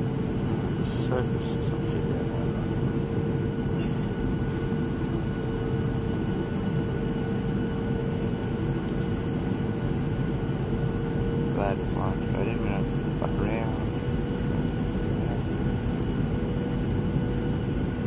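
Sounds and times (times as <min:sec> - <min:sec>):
jet airliner cabin noise: 0:00.0 - 0:18.0.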